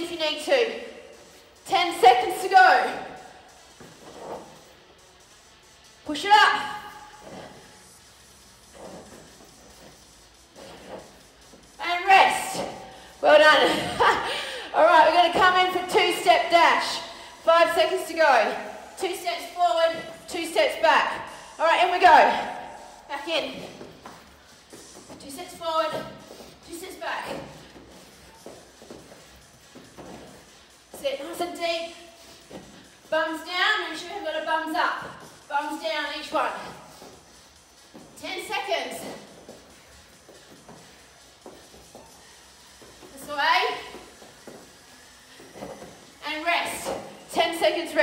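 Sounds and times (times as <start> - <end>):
person exercising on floor mat: 0.0 - 48.0.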